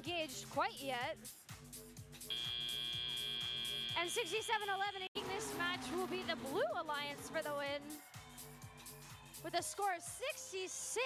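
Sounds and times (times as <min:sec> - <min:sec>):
high electronic buzzer tone: 0:02.3 - 0:05.1.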